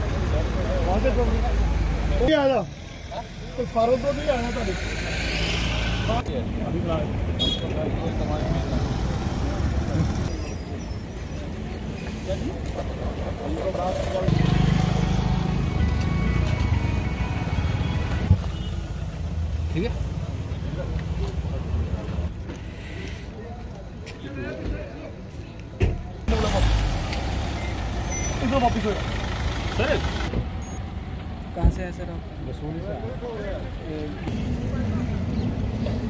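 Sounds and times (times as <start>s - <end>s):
car engines running: 26.3s - 32.6s.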